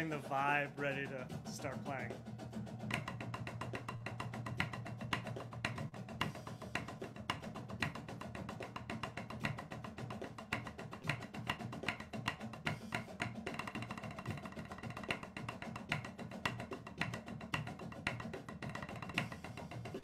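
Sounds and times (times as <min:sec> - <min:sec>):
snare drums playing in unison: 0:00.0 - 0:20.0.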